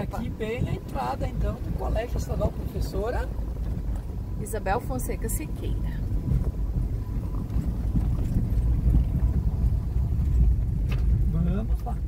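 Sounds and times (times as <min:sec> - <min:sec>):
car driving slowly: 0:00.0 - 0:12.0.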